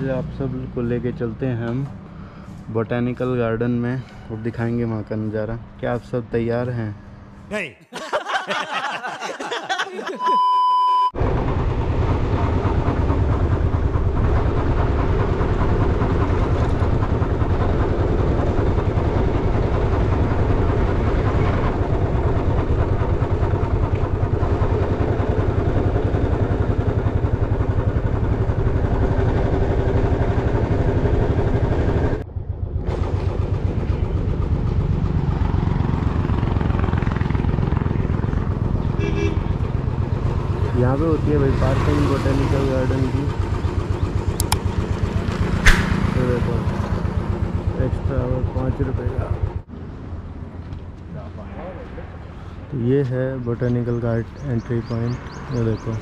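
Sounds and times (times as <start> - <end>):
motorcycle engine running: 11.4 - 49.7.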